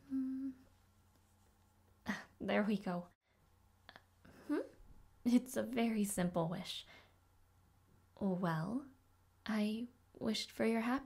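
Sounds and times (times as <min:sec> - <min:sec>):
woman humming: 0:00.0 - 0:00.7
faint background hum: 0:00.0 - 0:11.0.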